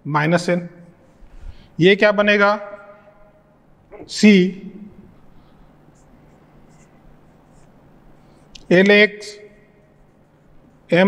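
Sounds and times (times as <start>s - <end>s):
marker pen squeaking on whiteboard: 5.2s - 8.7s, 9.4s - 11.0s.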